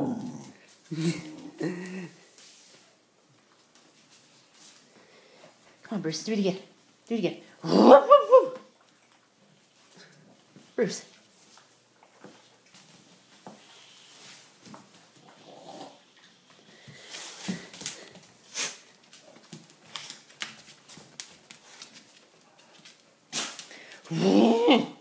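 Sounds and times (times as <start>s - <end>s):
dog paws clicking and scuffling: 0.1s - 7.2s, 8.5s - 15.6s, 16.2s - 24.0s.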